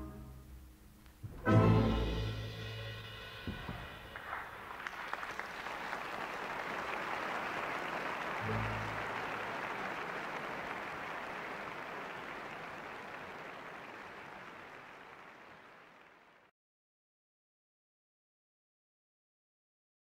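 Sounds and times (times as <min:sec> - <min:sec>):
low thud: 0:03.4 - 0:04.1
audience applause: 0:03.5 - 0:16.5.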